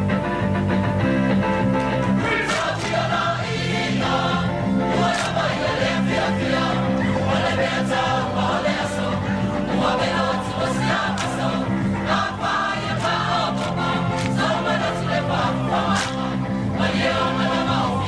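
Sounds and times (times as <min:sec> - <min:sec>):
group singing in chorus: 0:02.2 - 0:18.0.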